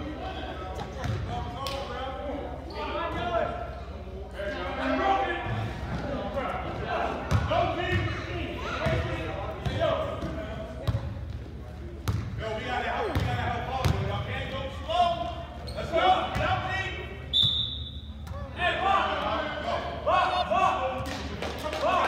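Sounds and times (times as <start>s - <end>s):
referee's whistle: 17.3s - 18.2s, 20.2s - 20.5s
voices calling out: 17.6s - 20.8s.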